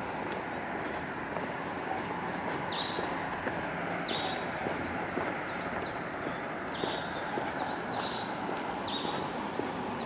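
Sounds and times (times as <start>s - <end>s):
road traffic noise: 0.0s - 10.0s
bird chirp: 1.6s - 3.2s, 4.0s - 10.0s.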